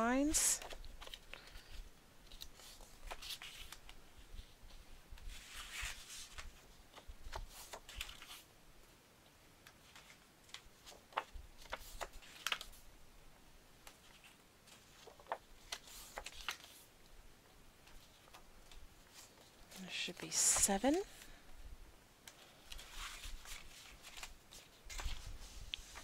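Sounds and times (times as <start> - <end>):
cardstock folding and rustling: 0.2 - 8.5, 9.6 - 12.8, 13.8 - 21.4, 22.2 - 26.0.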